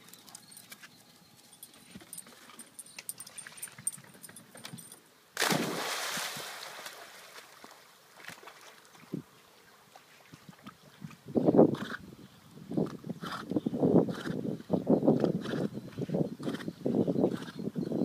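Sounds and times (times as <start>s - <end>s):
dog splashing into water: 5.4s - 8.7s.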